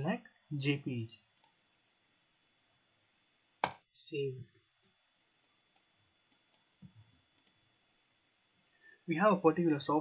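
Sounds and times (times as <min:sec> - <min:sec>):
faint computer mouse clicks: 0:01.4 - 0:01.6, 0:05.4 - 0:08.0.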